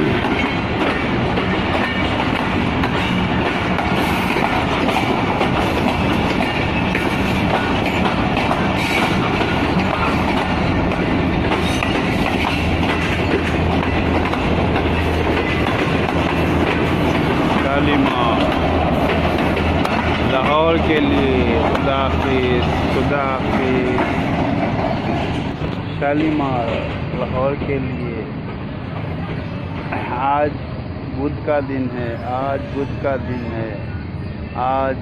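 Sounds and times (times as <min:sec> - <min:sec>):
train wheels rumbling on rails: 0:00.0 - 0:35.0.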